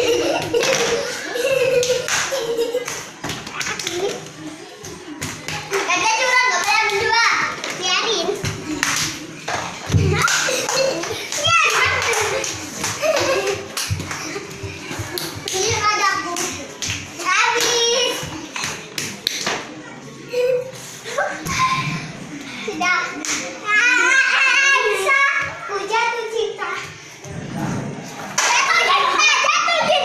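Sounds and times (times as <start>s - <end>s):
children calling out and laughing: 0.0s - 18.7s, 19.8s - 27.1s, 28.4s - 30.0s
feet and balls tapping tiled floor: 0.0s - 19.7s.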